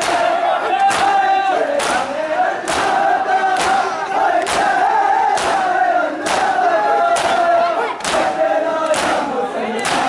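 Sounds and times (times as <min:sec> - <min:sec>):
hands slapping chests: 0:00.0 - 0:03.8, 0:04.4 - 0:09.2, 0:09.8 - 0:10.0
men chanting together: 0:00.0 - 0:10.0.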